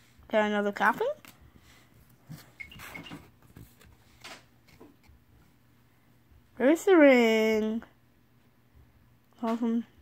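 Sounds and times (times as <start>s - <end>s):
soft rustles: 1.2s - 5.6s.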